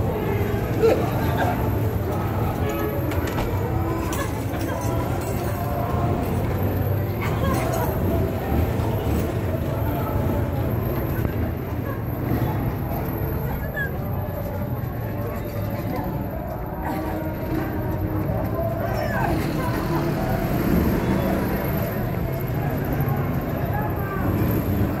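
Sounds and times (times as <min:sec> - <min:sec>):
indistinct voices: 0:00.0 - 0:25.0.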